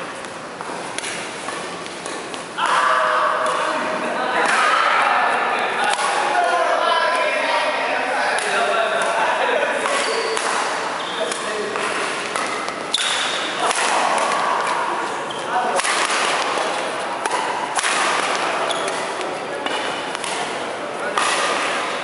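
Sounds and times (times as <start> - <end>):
rackets striking shuttlecock: 0.2 - 2.8, 9.8 - 14.8, 15.7 - 22.0.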